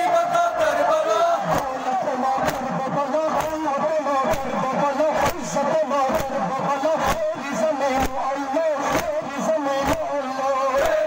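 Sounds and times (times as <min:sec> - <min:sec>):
men chanting in unison: 0:00.0 - 0:11.0
hands slapping chests: 0:01.5 - 0:01.7, 0:02.4 - 0:02.7, 0:03.3 - 0:03.6, 0:06.1 - 0:06.4, 0:08.0 - 0:08.2, 0:08.9 - 0:09.2, 0:09.8 - 0:10.1.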